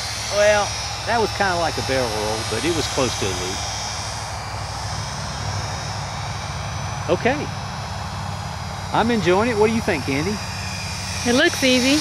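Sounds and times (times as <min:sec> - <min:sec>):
small electric motor and propeller: 0:00.0 - 0:12.0.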